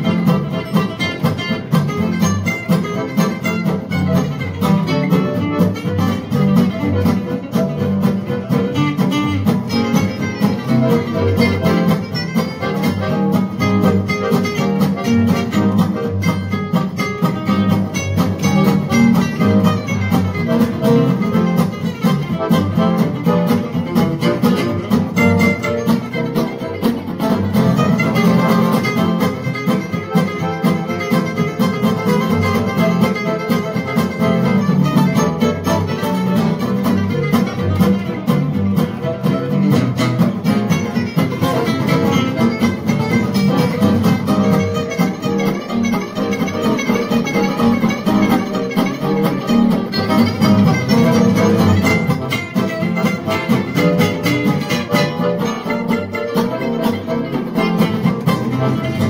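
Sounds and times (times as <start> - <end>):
accordion: 0.0 - 59.0
acoustic guitars: 0.0 - 59.0
double bass: 0.0 - 59.0
drums: 0.0 - 59.0
violin: 0.0 - 59.0.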